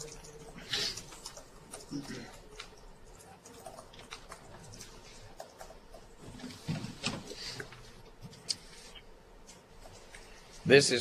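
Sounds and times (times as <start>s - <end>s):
small clicks and ticks: 0.0s - 6.2s.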